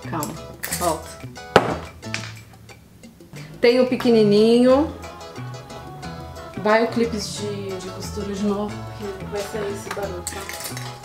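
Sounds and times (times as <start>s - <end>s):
faint background music: 0.0s - 11.0s
glass jar knocking on wooden table: 1.5s - 1.9s.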